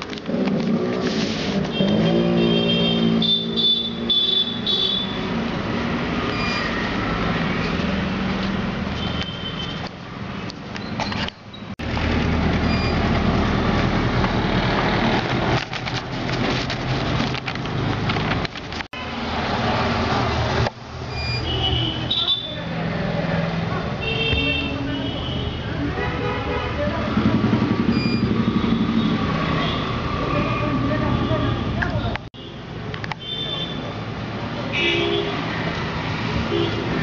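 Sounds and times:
low rumble of road traffic: 0.0s - 37.0s.

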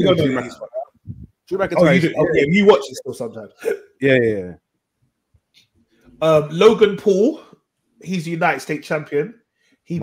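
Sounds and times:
men talking over one another: 0.0s - 0.9s, 1.5s - 3.4s.

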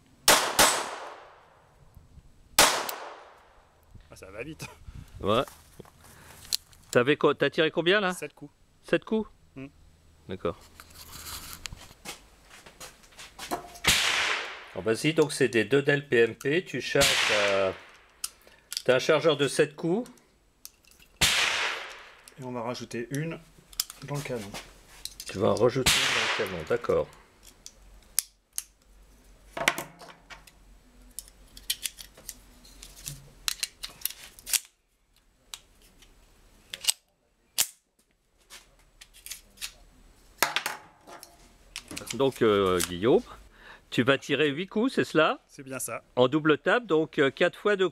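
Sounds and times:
gunshot with echo: 2.6s - 3.3s, 13.8s - 14.7s, 17.0s - 17.9s, 21.2s - 22.2s, 25.9s - 26.7s
sharp metallic pistol clicks: 27.4s - 28.8s
pistol magazine handled: 31.1s - 34.8s.

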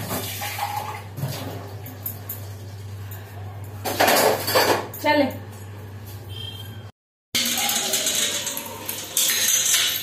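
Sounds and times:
metal utensils and dishes clattering: 3.8s - 5.1s, 7.4s - 10.0s.

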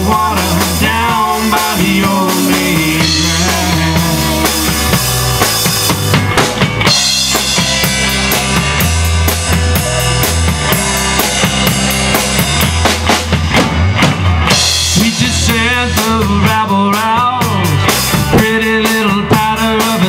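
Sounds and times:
drum kit: 0.0s - 20.0s
rock band playing: 0.0s - 20.0s.

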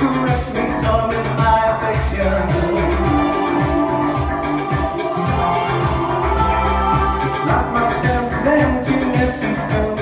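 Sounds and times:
man singing into microphone: 0.0s - 4.4s, 5.1s - 10.0s
pop backing track: 0.0s - 10.0s.

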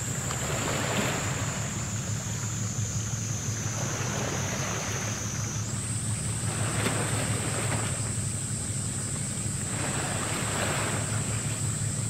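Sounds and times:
ship engine low hum: 0.0s - 12.0s
wind and water hiss: 0.0s - 12.0s.

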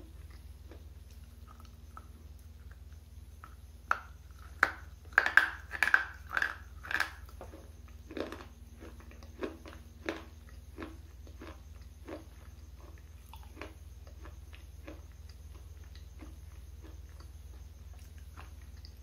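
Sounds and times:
crunchy biting and chewing: 0.0s - 19.0s.

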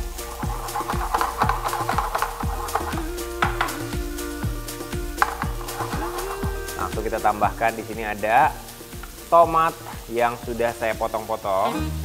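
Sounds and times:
background music with steady beat: 0.0s - 12.0s
onion sizzling in a frying pan: 0.0s - 12.0s.

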